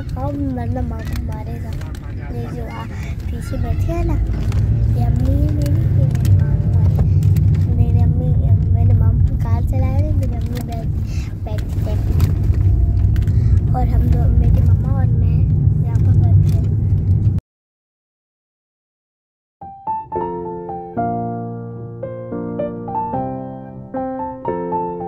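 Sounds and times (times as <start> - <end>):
people talking: 0.0 - 12.4, 13.7 - 16.7
car cabin rumble: 0.0 - 17.4.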